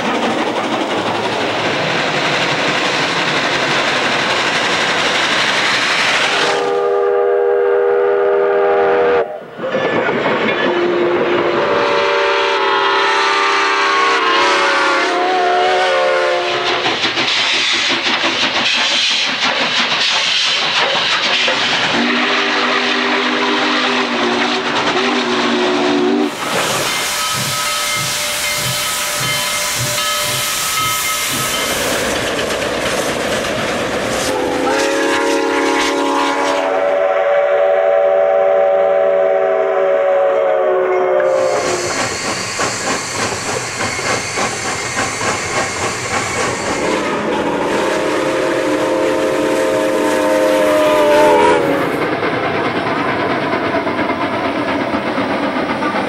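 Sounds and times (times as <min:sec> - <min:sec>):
hissing steam: 0:00.0 - 0:07.1, 0:10.8 - 0:40.2, 0:41.2 - 0:56.0
steam locomotive chuffing: 0:00.0 - 0:09.0, 0:09.6 - 0:56.0
rolling train noise: 0:00.0 - 0:56.0
steam locomotive chime whistle: 0:06.4 - 0:09.8, 0:10.6 - 0:16.8, 0:21.9 - 0:32.1, 0:34.2 - 0:43.0, 0:46.5 - 0:52.0.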